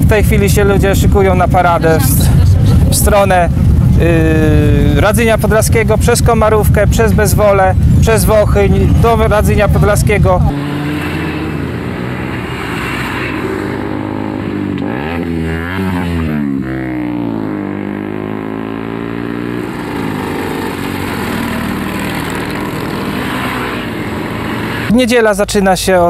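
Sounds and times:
motorcycles riding past: 0:00.0 - 0:24.9.

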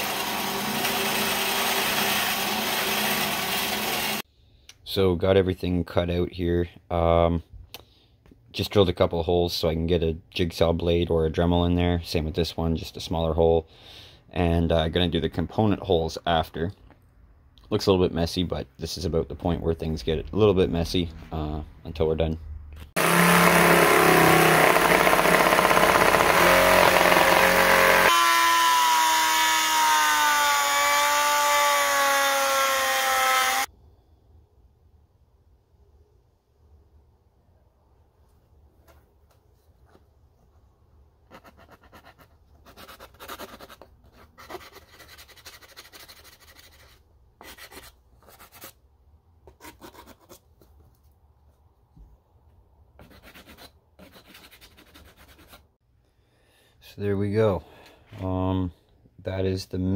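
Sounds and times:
jigsaw cutting plastic: 0:00.0 - 0:04.2, 0:23.0 - 0:33.7
sanding block rubbing: 0:41.4 - 0:48.8, 0:53.0 - 0:55.7.

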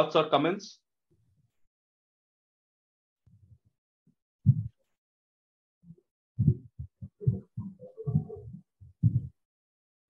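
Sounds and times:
low muffled bursts: 0:04.4 - 0:04.8, 0:05.9 - 0:09.3.

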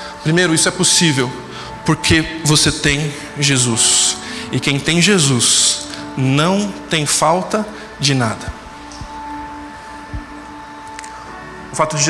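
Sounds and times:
sustained chord background music: 0:00.0 - 0:12.0.

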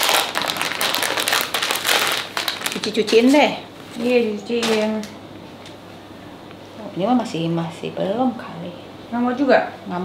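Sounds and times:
plastic wrapping crinkling: 0:00.0 - 0:05.1.

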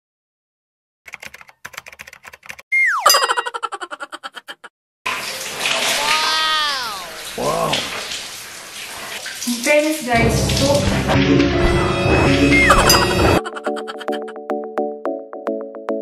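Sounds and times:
cartoon boing glide: 0:02.7 - 0:03.9, 0:12.5 - 0:13.4
shower running on hair: 0:05.1 - 0:13.4
voice gliding down in pitch: 0:06.0 - 0:07.7.

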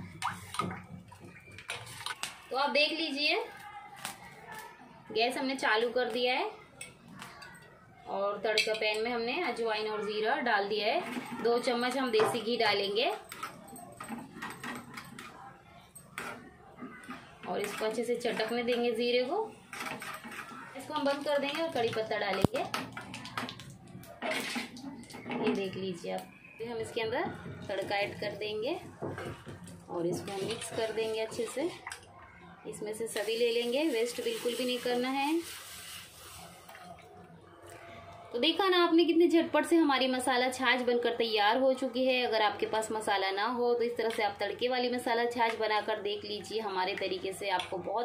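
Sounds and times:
liquid sloshing in a steel bowl: 0:00.0 - 0:03.2, 0:16.0 - 0:32.1
steel spoon scraping a pan: 0:16.1 - 0:23.1.

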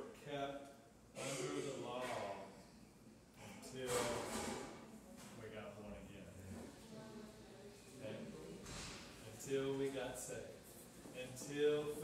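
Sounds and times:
man speaking: 0:00.0 - 0:02.6, 0:11.2 - 0:12.0.

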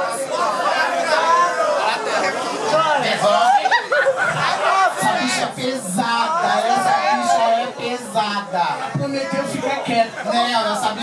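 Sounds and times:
voices chattering: 0:00.0 - 0:11.0.

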